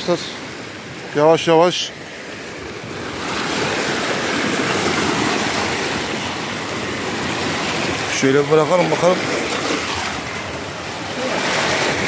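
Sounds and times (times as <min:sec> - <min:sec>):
waves washing over rocks: 0:00.0 - 0:12.0.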